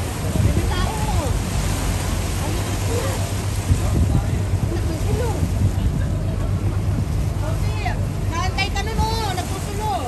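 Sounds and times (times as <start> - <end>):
boat motor running: 0.0 - 10.0
voices: 0.0 - 10.0
water rushing: 0.0 - 10.0
wind: 0.0 - 10.0.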